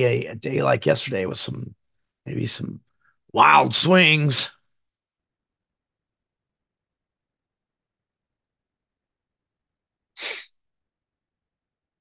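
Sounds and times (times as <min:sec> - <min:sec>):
person's sharp burst of breath: 0:10.2 - 0:10.6.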